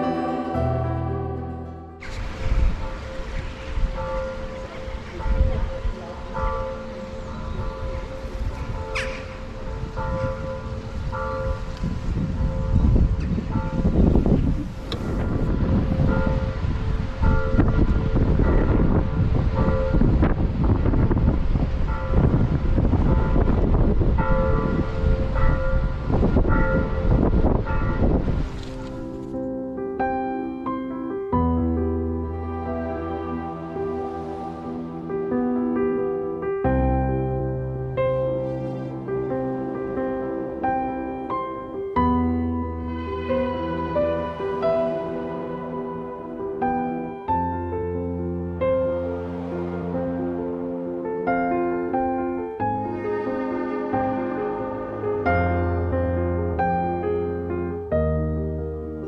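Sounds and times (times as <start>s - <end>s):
distant church bells ringing: 0.0s - 29.3s
wind buffeting microphone: 2.0s - 29.4s.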